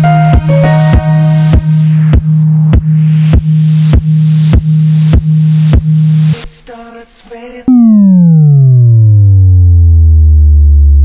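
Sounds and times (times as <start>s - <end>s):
synth bass pitch dive: 0.0s - 2.6s, 7.7s - 11.0s.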